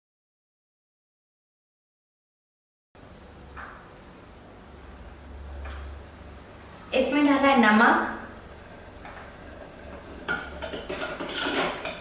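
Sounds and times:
ladle scraping a metal pot: 9.5s - 12.0s.

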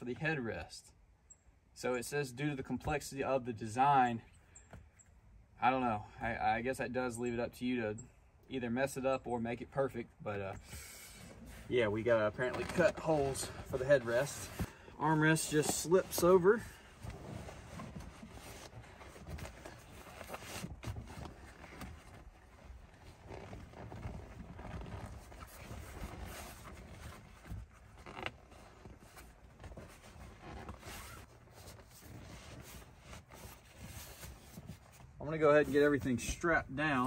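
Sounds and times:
seat cover rustling and scraping: 10.6s - 37.0s.

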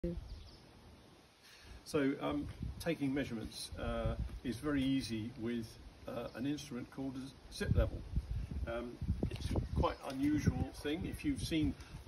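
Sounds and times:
man speaking: 1.9s - 8.0s, 8.7s - 11.8s.

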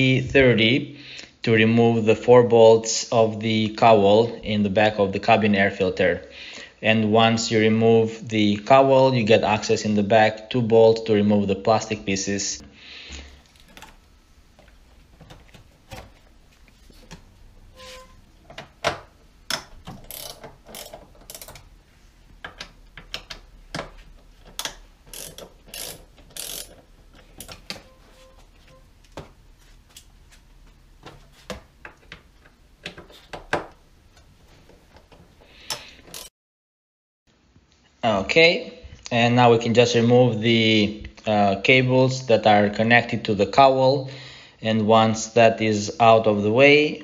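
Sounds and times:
socket ratchet clicking: 18.5s - 21.7s, 22.4s - 27.9s, 35.5s - 36.3s.

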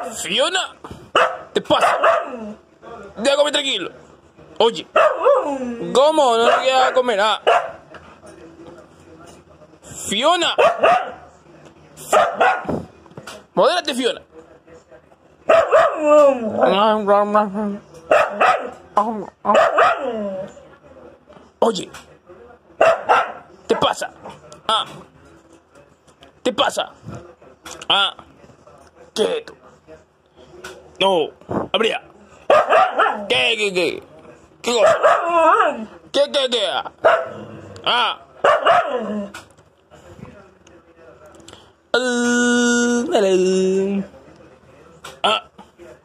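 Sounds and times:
dog yowling: 1.2s - 2.6s, 4.9s - 7.8s, 15.5s - 16.8s, 19.5s - 20.6s, 32.5s - 33.3s, 34.8s - 35.9s, 38.5s - 39.4s.

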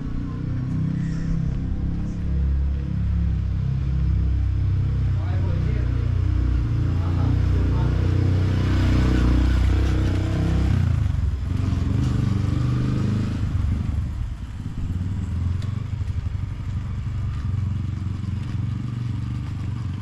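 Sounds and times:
small motorcycle engine running: 5.4s - 20.0s.

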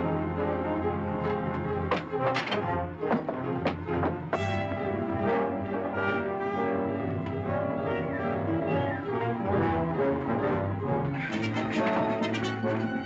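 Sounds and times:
orchestral music with brass: 0.0s - 13.0s.

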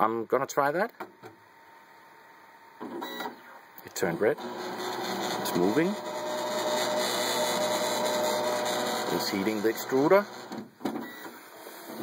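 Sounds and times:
three d printer whirring: 2.8s - 12.0s.

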